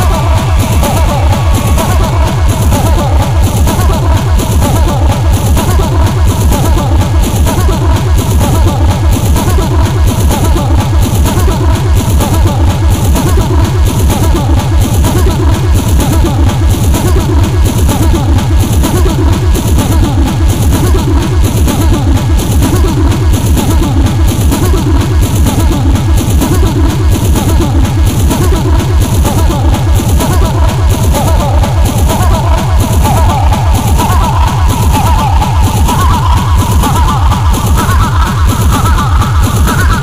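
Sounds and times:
fast electronic music: 0.0 - 40.0
fast pounding kick drum: 0.0 - 40.0.

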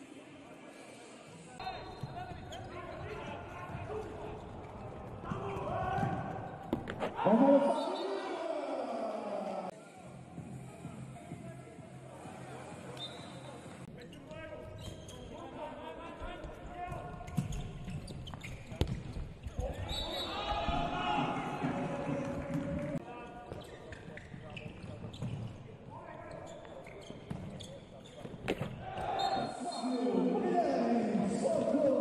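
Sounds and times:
players shouting: 7.1 - 9.7
ball bouncing on court: 17.3 - 19.2.

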